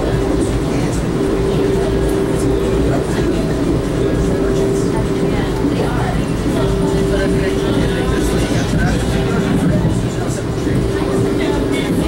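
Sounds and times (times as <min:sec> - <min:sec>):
steady droning tone: 0:00.0 - 0:12.0
wheels rumbling on rail: 0:00.0 - 0:12.0.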